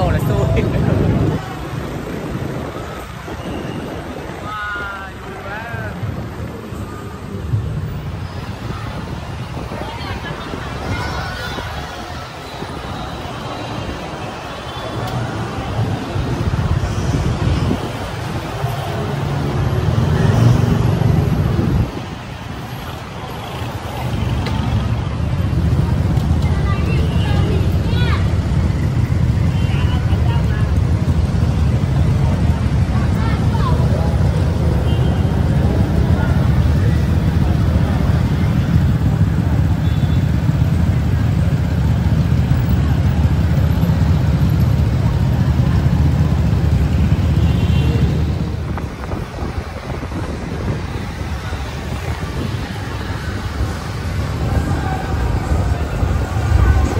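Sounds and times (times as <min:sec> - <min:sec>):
road traffic: 0:00.0 - 0:56.9
wind buffeting microphone: 0:15.4 - 0:22.7, 0:48.0 - 0:56.9.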